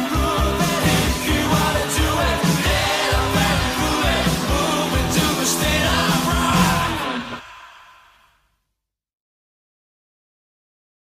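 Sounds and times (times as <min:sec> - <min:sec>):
rock band final chord ringing: 0:00.0 - 0:07.4.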